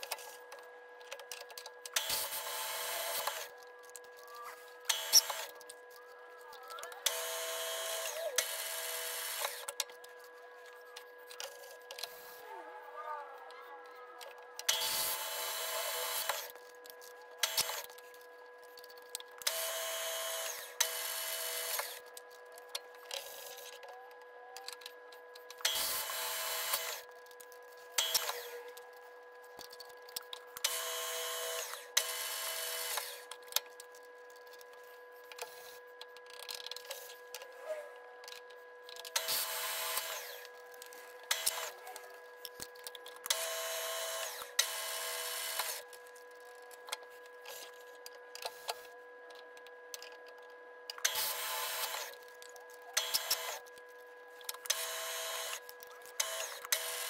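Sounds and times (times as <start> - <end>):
milling spindle whine: 0.0 - 57.0
drill cutting into metal: 2.0 - 3.6, 4.6 - 5.6, 7.0 - 9.8, 14.6 - 16.5, 17.4 - 17.9, 19.4 - 22.0, 25.6 - 27.1, 28.0 - 28.6, 30.6 - 33.3, 39.1 - 42.2, 43.2 - 45.9, 51.0 - 52.2, 53.0 - 53.6, 54.6 - 57.0.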